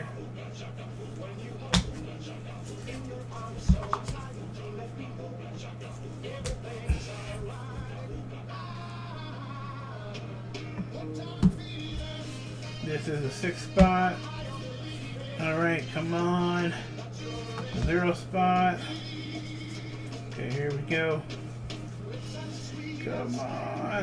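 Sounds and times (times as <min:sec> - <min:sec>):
quiet background music: 0:00.0 - 0:24.0
steady low hum: 0:00.0 - 0:24.0.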